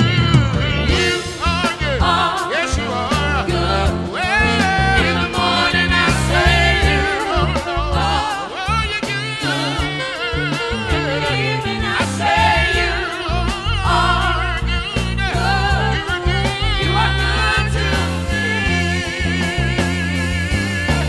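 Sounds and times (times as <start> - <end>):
choir singing into microphones: 0.0 - 21.0
instrumental accompaniment: 0.0 - 21.0.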